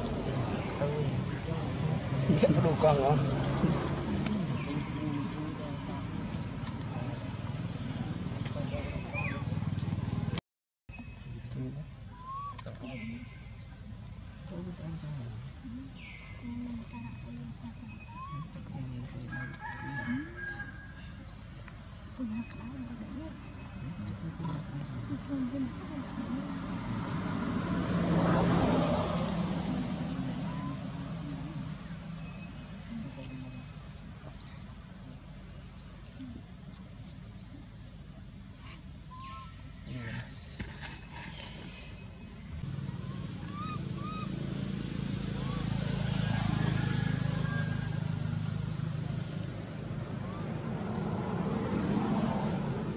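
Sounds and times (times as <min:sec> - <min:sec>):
small birds chirping: 0:00.0 - 0:27.2, 0:27.9 - 0:52.9
lower animal call: 0:12.1 - 0:13.3, 0:15.9 - 0:21.2, 0:38.6 - 0:40.4, 0:42.7 - 0:49.5
high rising animal calls: 0:42.8 - 0:44.6, 0:45.2 - 0:48.2.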